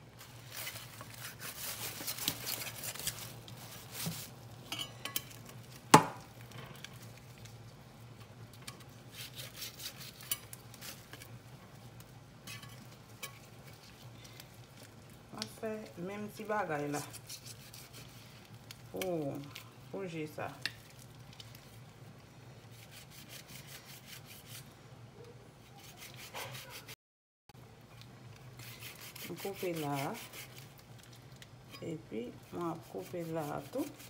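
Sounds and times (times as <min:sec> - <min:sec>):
plastic crinkling: 0:00.1 - 0:04.6
knife cutting and scraping: 0:00.4 - 0:04.4, 0:08.8 - 0:11.4, 0:16.8 - 0:18.2, 0:22.7 - 0:24.7, 0:25.6 - 0:27.0, 0:28.6 - 0:30.7, 0:32.5 - 0:34.0.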